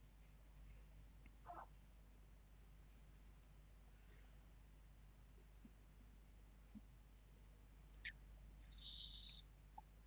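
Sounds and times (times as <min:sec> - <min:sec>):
faint sharp clicks: 0:06.8 - 0:08.2
short burst of hiss: 0:08.7 - 0:09.4.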